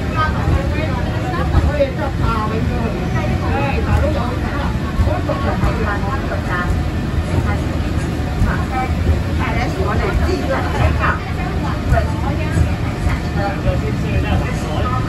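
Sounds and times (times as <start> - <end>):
funicular car rumbling on track: 0.0 - 15.0
passengers talking: 0.0 - 15.0.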